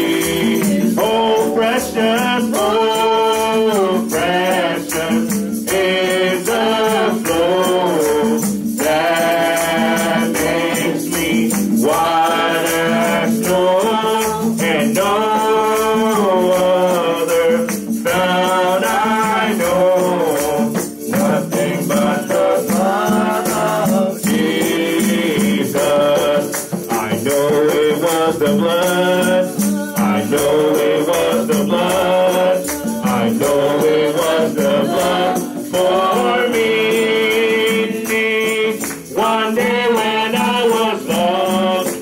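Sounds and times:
gospel singing: 0.0s - 42.0s
hand drum beat: 0.0s - 42.0s
keyboard: 0.0s - 42.0s.

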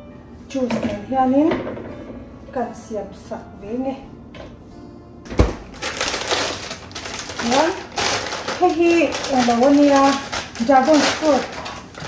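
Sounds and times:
plastic bag crinkling: 5.7s - 12.0s.

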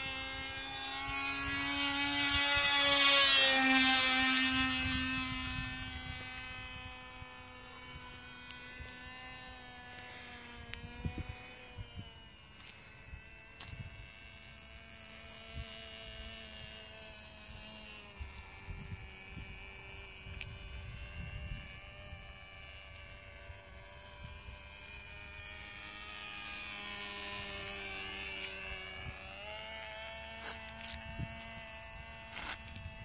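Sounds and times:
model airplane engine buzzing: 0.0s - 33.0s.

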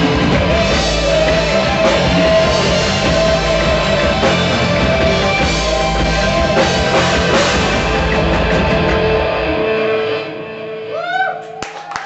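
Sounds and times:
rock band chord ringing out: 0.0s - 10.9s
audience cheering and clapping: 11.0s - 12.0s.

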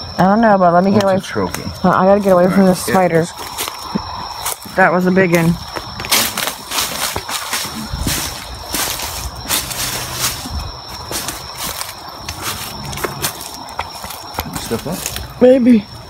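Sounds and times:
footsteps through dry leaves: 5.8s - 15.4s.

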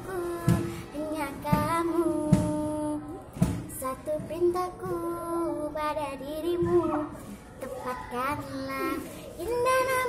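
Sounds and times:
girl singing a love song: 0.0s - 10.0s.

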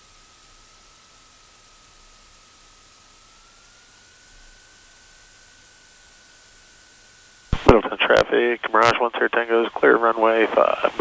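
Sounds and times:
steady electrical hiss: 6.4s - 11.0s
thin faint whine: 7.6s - 11.0s.

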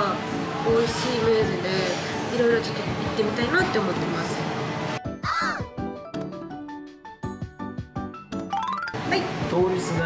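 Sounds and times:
light plucked music: 5.0s - 10.0s.

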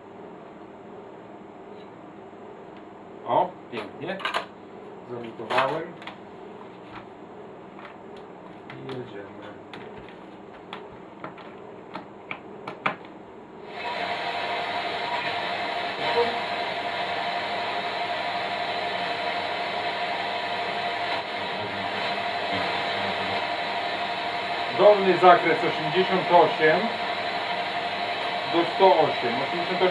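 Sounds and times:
radio static hiss with whistling: 13.8s - 29.9s.

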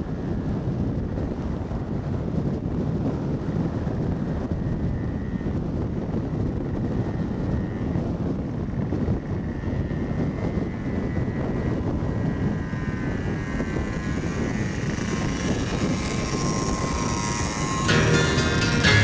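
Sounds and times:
moped engine drone: 0.0s - 19.0s
wind rumble on microphone: 0.0s - 19.0s.

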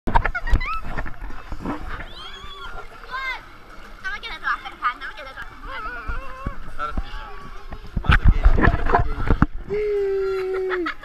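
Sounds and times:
pool water splashing: 0.1s - 11.0s
children squealing and laughing: 0.3s - 1.2s, 1.9s - 3.4s, 5.6s - 7.4s.

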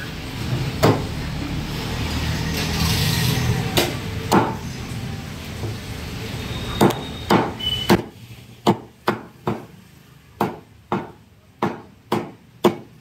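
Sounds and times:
cleaver chopping on wooden block: 10.4s - 13.0s.

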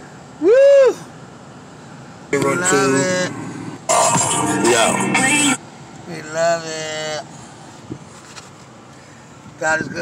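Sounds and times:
person whooping: 0.4s - 1.1s.

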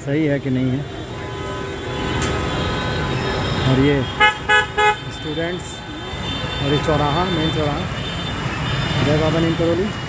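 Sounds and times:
engine and tyre noise: 0.0s - 10.0s.

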